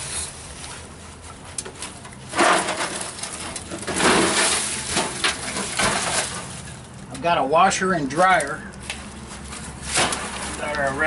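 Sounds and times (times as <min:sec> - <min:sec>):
sheet metal rattling and scraping: 0:01.6 - 0:07.3, 0:07.9 - 0:11.0.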